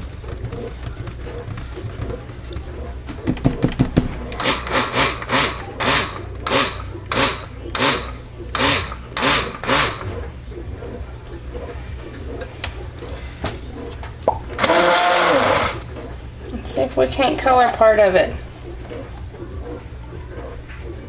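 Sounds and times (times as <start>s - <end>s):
stick blender motor humming: 0.0s - 13.2s, 14.6s - 16.6s
blender whirring burst: 4.4s - 10.1s, 14.6s - 15.9s.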